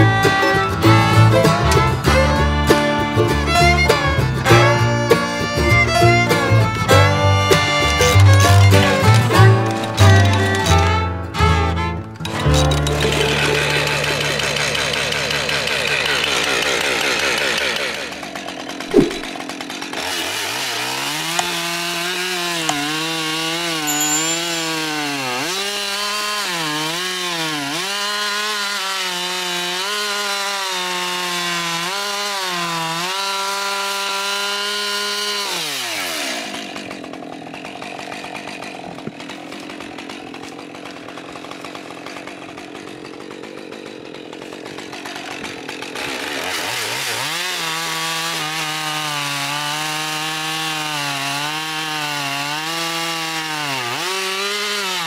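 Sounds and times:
chainsaw cutting log: 0:00.0 - 0:55.0.

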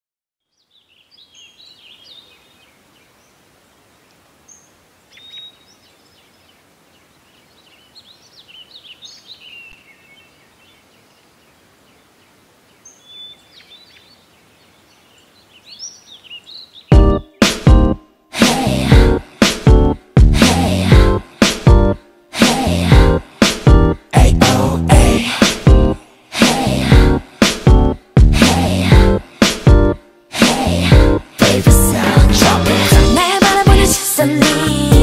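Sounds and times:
birds chirping: 0:00.4 - 0:18.0
faint hiss: 0:00.6 - 0:16.8
loud pop music: 0:16.9 - 0:35.0.

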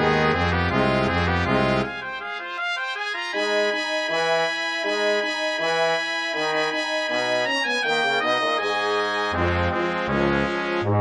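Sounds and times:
horn and trombone notes: 0:00.0 - 0:11.0.

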